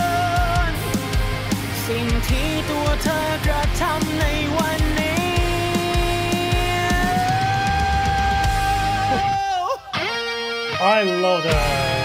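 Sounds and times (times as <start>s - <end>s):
drums: 0.0s - 12.0s
rock band music: 0.0s - 12.0s.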